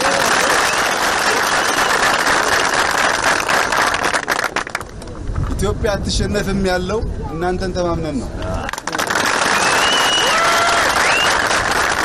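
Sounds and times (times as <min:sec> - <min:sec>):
people applauding: 0:00.0 - 0:05.0, 0:08.4 - 0:12.0.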